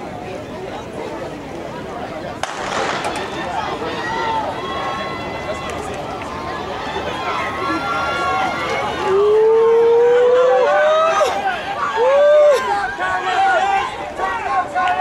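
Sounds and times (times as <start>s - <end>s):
starting pistol shot: 2.4s - 3.4s
spectators shouting and cheering: 2.4s - 15.0s
loud rising yell: 7.0s - 14.6s.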